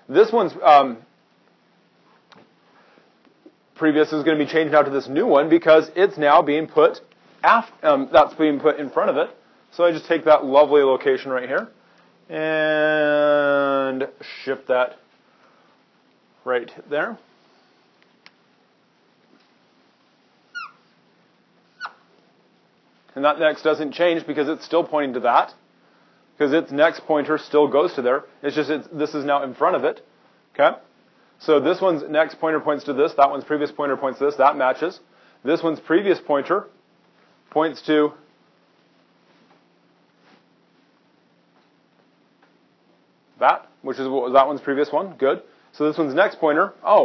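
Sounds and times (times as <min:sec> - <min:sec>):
marker squeaking on whiteboard: 0:20.5 - 0:21.0, 0:21.7 - 0:22.1.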